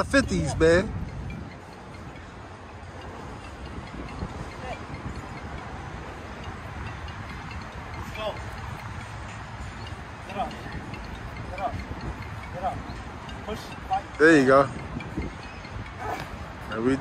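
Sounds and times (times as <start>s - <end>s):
outdoor rumble and hiss: 0.0s - 17.0s.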